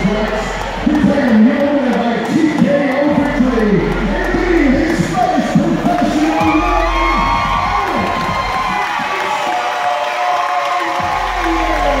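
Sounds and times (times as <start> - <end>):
crowd cheering and shouting: 0.0 - 12.0
music playing: 0.0 - 12.0.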